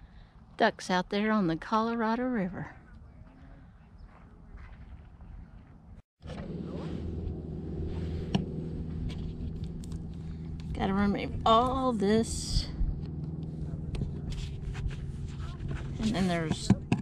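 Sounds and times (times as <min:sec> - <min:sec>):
faint outdoor ambience: 0:00.0 - 0:17.0
low motor hum: 0:02.7 - 0:17.0.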